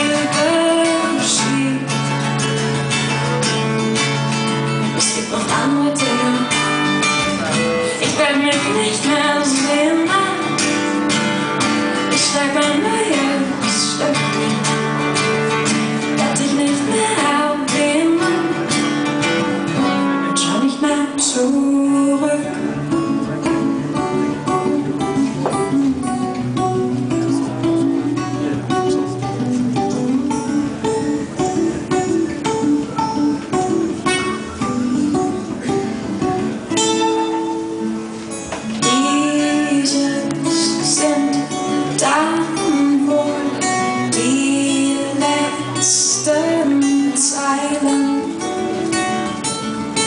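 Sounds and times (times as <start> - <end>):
acoustic guitars playing: 0.0 - 50.0.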